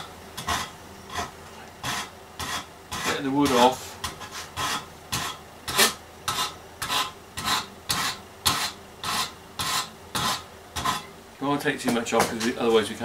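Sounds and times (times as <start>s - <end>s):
wood rasp scraping wood: 0.0s - 11.1s.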